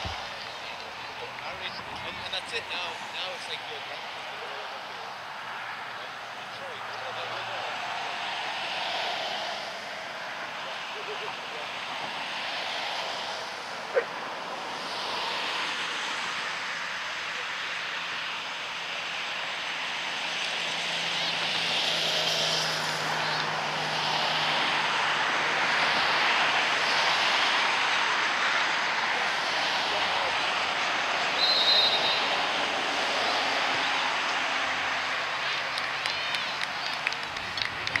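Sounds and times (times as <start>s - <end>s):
airplane passing overhead: 0.0s - 38.0s
referee's whistle: 31.4s - 32.3s.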